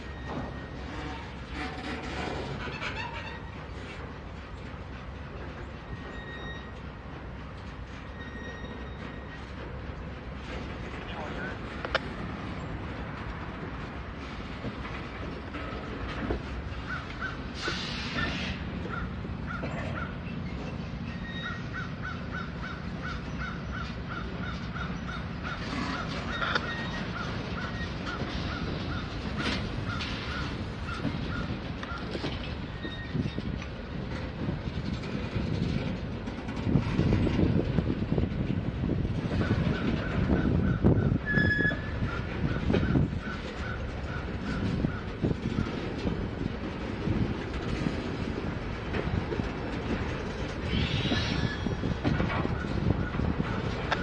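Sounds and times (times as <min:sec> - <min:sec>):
train wheels rumbling: 0:00.0 - 0:54.0
short high squeak: 0:05.9 - 0:06.8, 0:08.1 - 0:09.4, 0:41.2 - 0:42.0, 0:50.7 - 0:51.9.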